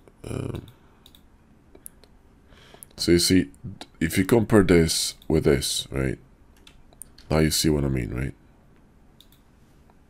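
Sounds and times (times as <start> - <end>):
low room hiss: 0.0 - 10.0
computer clicks: 0.6 - 2.2, 6.5 - 7.3, 9.2 - 9.5.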